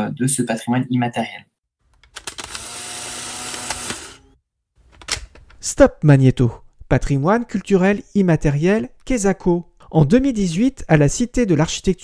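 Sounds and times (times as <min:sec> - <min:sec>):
tape recorder whirring: 0:02.0 - 0:04.4
tape recorder clicks: 0:03.4 - 0:04.2.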